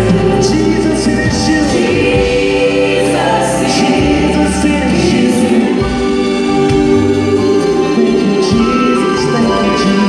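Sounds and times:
deep bass notes: 0:00.0 - 0:09.7
gospel choir singing: 0:00.0 - 0:10.0
instrumental accompaniment: 0:00.0 - 0:10.0.

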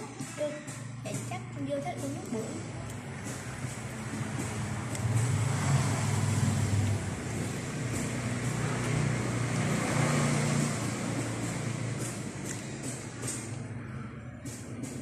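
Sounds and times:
passing vehicle engine rumble: 0:02.3 - 0:15.0.

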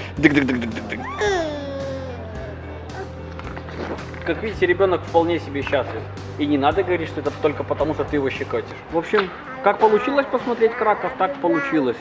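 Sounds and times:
baby squealing happily: 0:01.0 - 0:03.1, 0:09.4 - 0:12.0.

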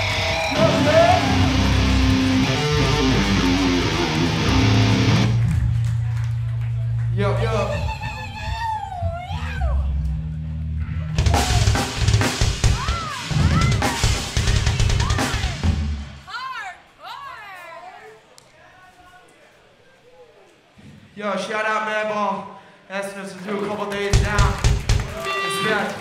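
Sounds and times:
people shouting: 0:11.2 - 0:12.0, 0:12.6 - 0:15.7
drum kit hits: 0:11.2 - 0:16.2, 0:24.1 - 0:25.1.

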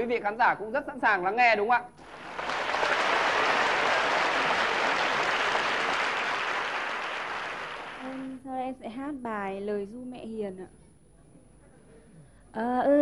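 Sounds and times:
studio audience applauding: 0:02.0 - 0:08.3.

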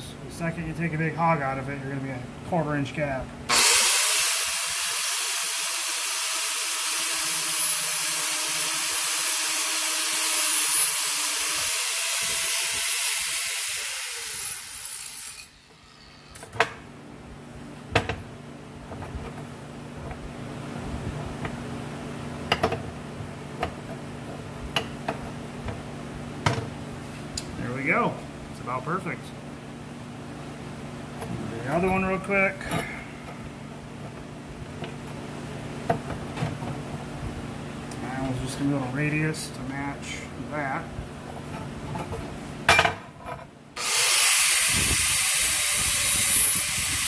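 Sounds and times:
angle grinder grinding steel: 0:03.5 - 0:16.4, 0:43.8 - 0:47.0.

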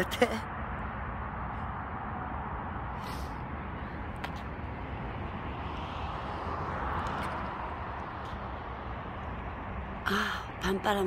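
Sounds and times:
outdoor rushing noise: 0:00.3 - 0:10.6.

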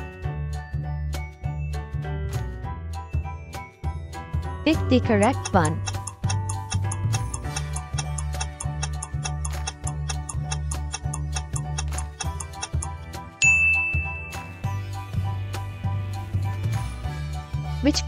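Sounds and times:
looping background music: 0:00.0 - 0:13.4, 0:14.0 - 0:18.0
clock-like ticking: 0:05.1 - 0:13.0
bright ding: 0:13.4 - 0:14.5.

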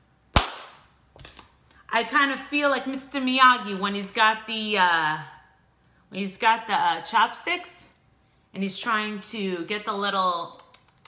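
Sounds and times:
loud hand slap: 0:00.3 - 0:00.9.

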